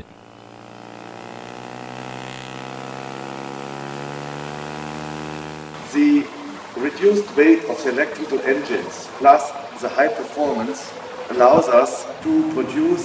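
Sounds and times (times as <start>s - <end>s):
electric plane propeller hum: 0.0s - 13.0s.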